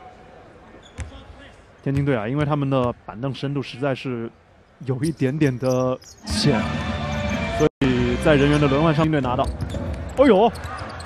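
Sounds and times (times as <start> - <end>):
faint arena background noise: 0.0 - 11.0.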